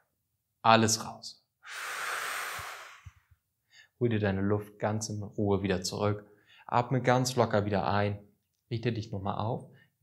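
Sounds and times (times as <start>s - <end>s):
man exhaling forcefully: 1.6s - 3.3s.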